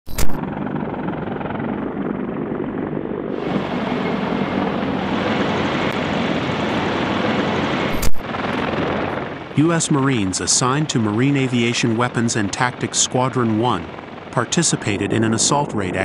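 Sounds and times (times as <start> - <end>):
aircraft rotors and engines droning: 0.1 - 16.0.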